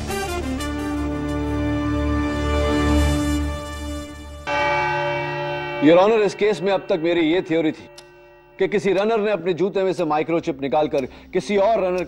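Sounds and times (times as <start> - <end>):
background music: 0.0 - 12.0
bell-like chime ringing: 4.5 - 10.1
man speaking: 5.8 - 7.9, 8.6 - 12.0.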